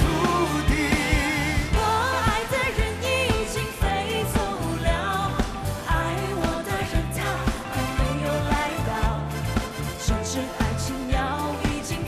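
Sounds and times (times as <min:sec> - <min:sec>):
man singing pop ballad: 0:00.0 - 0:02.7
drum beat: 0:00.0 - 0:04.6
bass line: 0:00.0 - 0:12.0.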